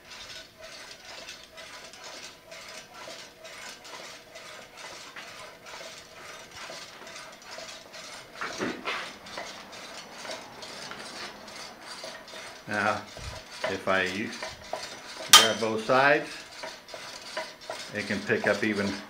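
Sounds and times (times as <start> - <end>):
gravity wheel clicking and rattling: 0.0 - 19.0.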